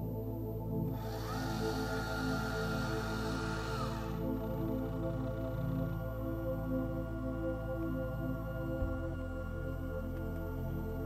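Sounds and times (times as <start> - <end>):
soft ambient music: 0.0 - 11.0
motor whirring whine: 0.9 - 11.0.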